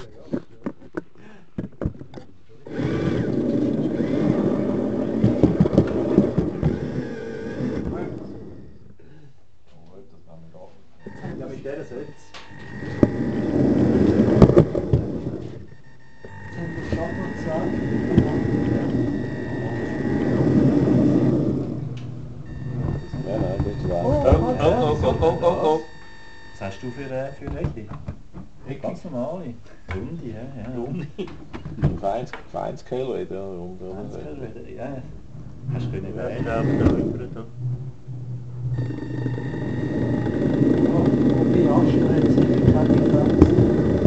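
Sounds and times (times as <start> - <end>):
model train motor hum: 2.7 - 8.4, 12.3 - 14.8, 16.2 - 21.8, 38.8 - 44.0
wheels rolling on track: 2.7 - 8.4, 12.5 - 15.6, 16.3 - 21.8, 38.8 - 44.0
thin high whine: 11.0 - 27.5, 35.6 - 44.0.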